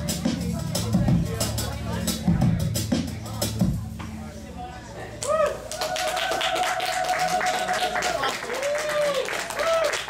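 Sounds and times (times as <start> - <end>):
music: 0.0 - 10.0
audience clapping: 5.2 - 10.0.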